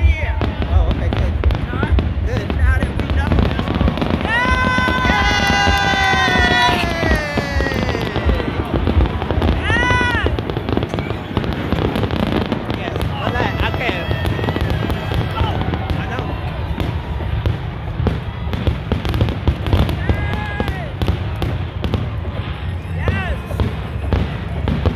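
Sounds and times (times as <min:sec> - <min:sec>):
fireworks bangs and crackles: 0:00.0 - 0:24.9.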